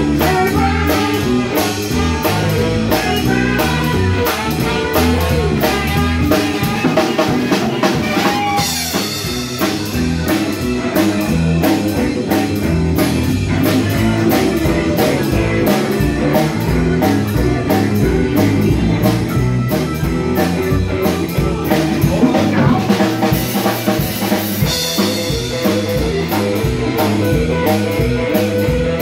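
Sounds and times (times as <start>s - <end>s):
live band playing instrumental: 0.0s - 29.0s.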